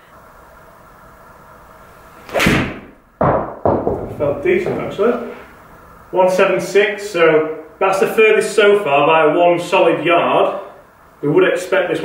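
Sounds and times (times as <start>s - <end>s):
golf club striking ball: 2.3s - 4.8s.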